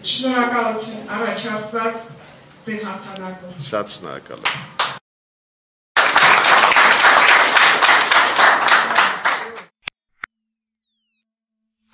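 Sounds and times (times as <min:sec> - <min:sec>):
downward sweeping electronic tone: 0:09.8 - 0:11.9.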